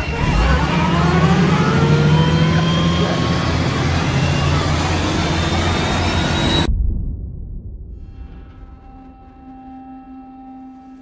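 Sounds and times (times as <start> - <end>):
vehicle engines running: 0.0 - 6.7.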